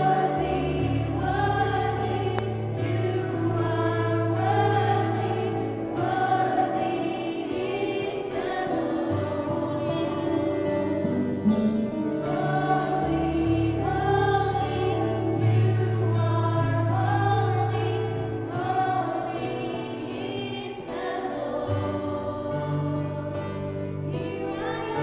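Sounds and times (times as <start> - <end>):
electric guitar: 0.0 - 25.0
women singing gospel: 0.0 - 25.0.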